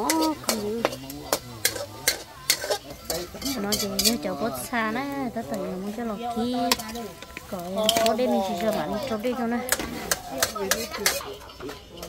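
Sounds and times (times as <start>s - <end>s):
metal ladle scraping a wok: 0.0s - 4.8s, 6.5s - 12.0s
faint sizzle: 0.0s - 12.0s.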